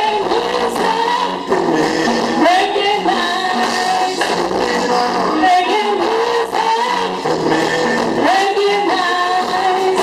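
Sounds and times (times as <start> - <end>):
man singing long sliding notes: 0.0 - 2.8, 3.5 - 9.6
live reggae band: 0.0 - 10.0.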